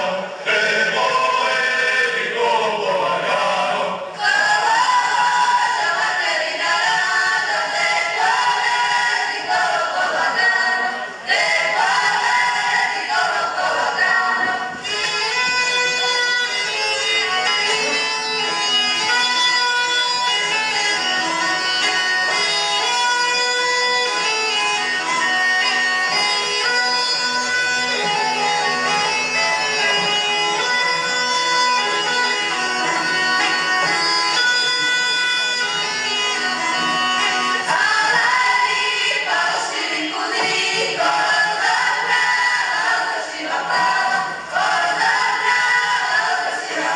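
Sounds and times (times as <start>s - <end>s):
instrumental folk dance music: 0.0s - 46.9s.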